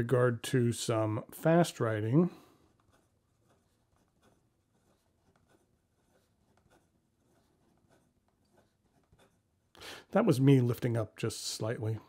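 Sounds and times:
pen nib scratching on paper: 2.7s - 9.7s.

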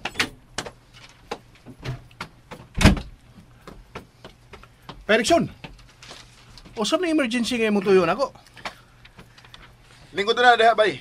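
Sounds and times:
door shutting thump: 2.7s - 3.2s.

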